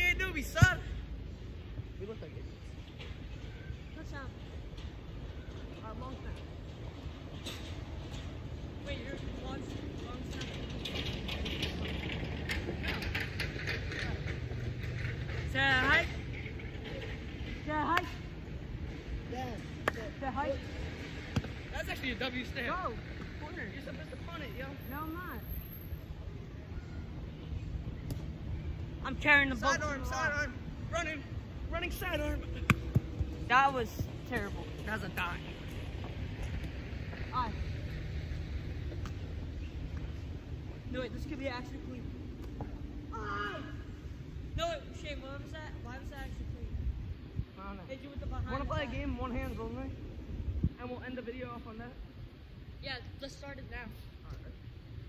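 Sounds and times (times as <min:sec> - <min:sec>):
low outdoor rumble: 0:00.0 - 0:55.0.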